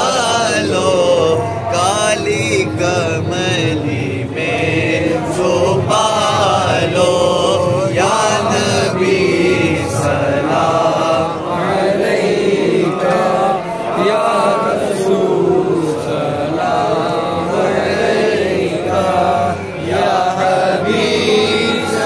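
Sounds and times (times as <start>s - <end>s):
men chanting together: 0.0s - 22.0s.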